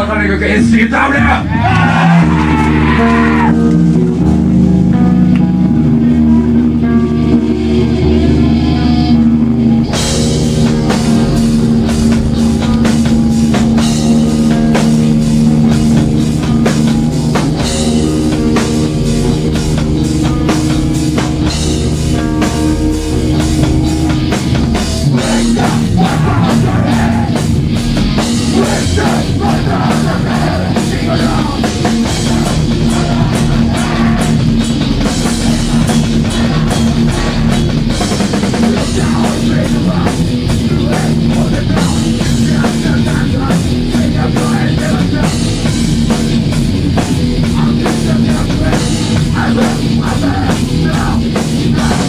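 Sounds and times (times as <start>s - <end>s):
distorted electric guitars: 0.0s - 52.0s
drums crashing: 0.0s - 52.0s.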